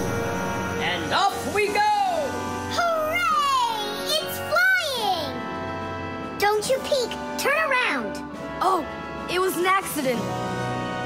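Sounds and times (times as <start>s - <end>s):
cartoon background music: 0.0s - 11.0s
child's wordless call: 2.7s - 5.4s.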